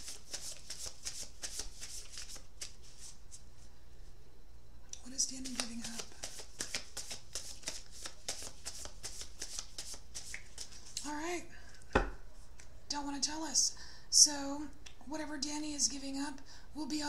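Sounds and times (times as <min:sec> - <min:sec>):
cards being shuffled: 0:00.0 - 0:03.4, 0:05.4 - 0:11.1
sharp knock: 0:12.0 - 0:12.2.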